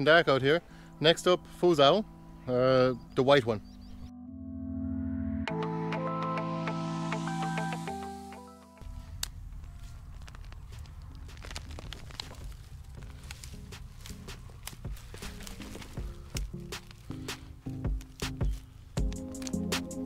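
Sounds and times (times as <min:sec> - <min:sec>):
soil and stalks crackling: 0:00.0 - 0:03.9, 0:08.8 - 0:20.0
background music: 0:00.0 - 0:09.2, 0:13.0 - 0:20.0.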